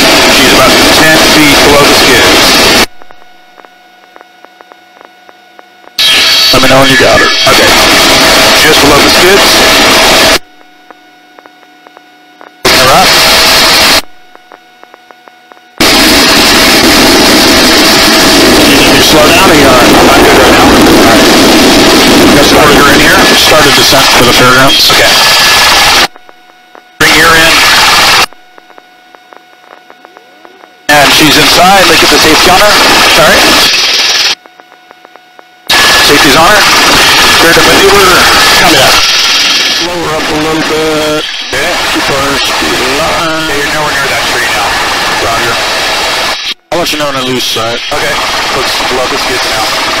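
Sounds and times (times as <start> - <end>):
helicopter rotor and engine: 0.0 - 2.9, 5.9 - 10.4, 12.4 - 14.0, 15.8 - 26.2, 27.0 - 28.3, 29.2 - 50.0
low hum: 0.0 - 50.0
crew voices over intercom: 0.2 - 2.7, 3.6 - 10.3, 11.3 - 13.4, 18.6 - 21.4, 22.2 - 25.9, 26.9 - 45.8, 46.7 - 50.0.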